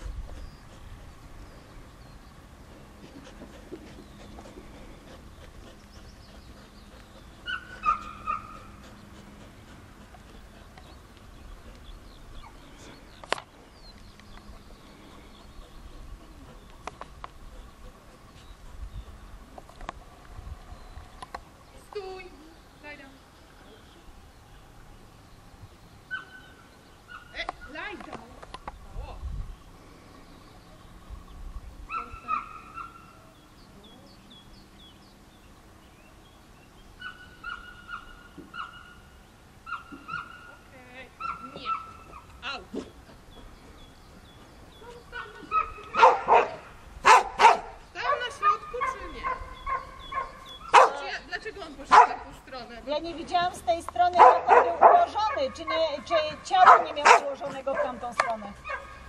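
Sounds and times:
dog barking loudly: 7.5s - 8.7s, 45.5s - 51.1s, 51.9s - 52.2s, 54.2s - 59.0s.

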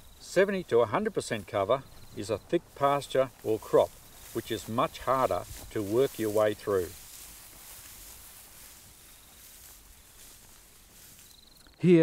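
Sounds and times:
outdoor background hiss: 0.0s - 12.0s
man's voice: 0.3s - 7.0s.

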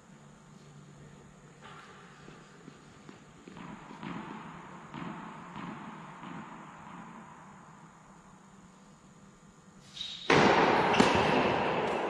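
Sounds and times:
footsteps on a tennis court: 1.6s - 7.0s.

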